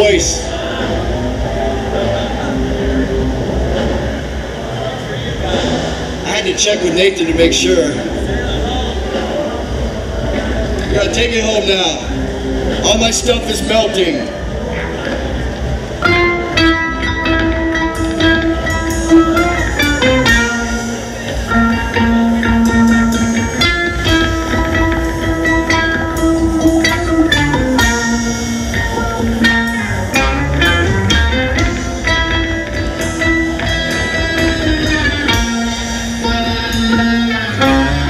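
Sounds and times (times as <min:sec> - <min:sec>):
drum kit: 0:00.0 - 0:38.0
electric ukulele held notes: 0:15.9 - 0:38.0.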